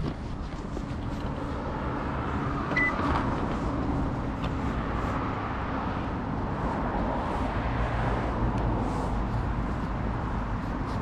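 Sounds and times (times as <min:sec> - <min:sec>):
short electronic beep: 0:02.8 - 0:03.0.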